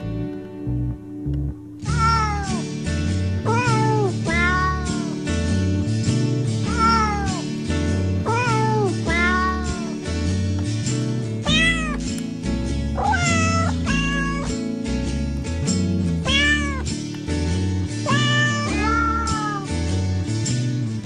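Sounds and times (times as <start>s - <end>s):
background music: 0.0s - 21.0s
cat meowing: 1.8s - 2.8s, 3.4s - 5.2s, 6.7s - 7.5s, 8.2s - 10.0s, 11.4s - 12.1s, 13.0s - 14.6s, 16.2s - 16.9s, 18.0s - 19.8s.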